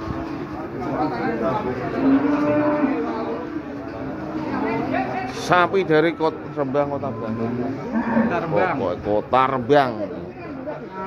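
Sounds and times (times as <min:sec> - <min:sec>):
people chattering: 0:00.0 - 0:11.0
cow mooing: 0:01.8 - 0:04.9, 0:07.1 - 0:08.7.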